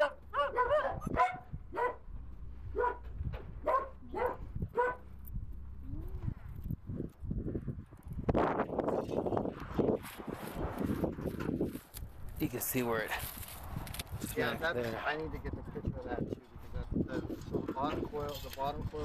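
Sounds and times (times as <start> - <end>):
dog barking: 0.0 - 2.1, 2.7 - 5.1.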